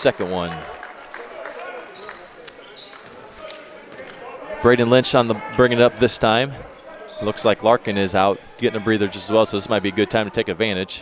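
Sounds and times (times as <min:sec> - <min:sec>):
crowd chatter echoing: 0:00.0 - 0:11.0.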